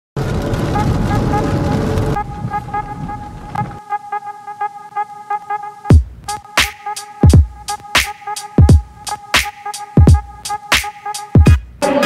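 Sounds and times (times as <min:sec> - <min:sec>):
road and rain noise in car: 0:00.2 - 0:03.8.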